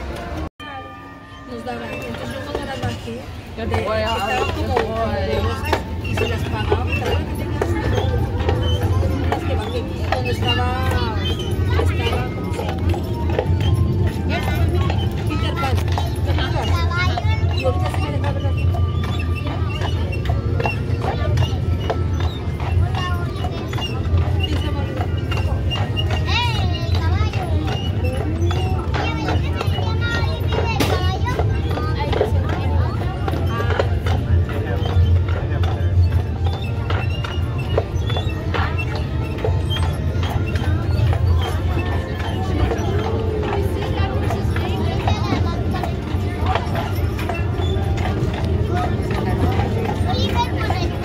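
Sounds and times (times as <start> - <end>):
people talking: 0.0 - 51.0
horse hooves clip-clopping: 1.6 - 51.0.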